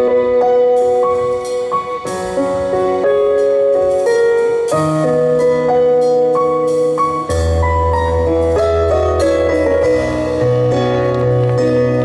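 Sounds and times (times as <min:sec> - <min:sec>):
live band instrumental: 0:00.0 - 0:12.0.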